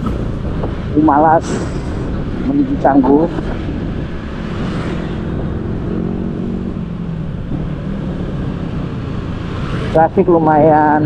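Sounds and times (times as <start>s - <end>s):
road and traffic noise: 0.0s - 11.0s
scooter engine humming: 0.0s - 11.0s.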